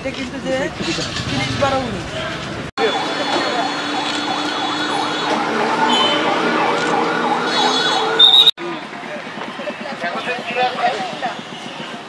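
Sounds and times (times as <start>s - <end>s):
siren warbling: 2.8s - 8.5s.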